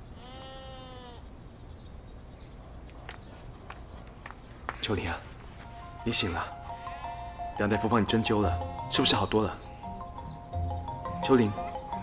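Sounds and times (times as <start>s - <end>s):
drawn-out bleat-like call: 0.2s - 1.2s.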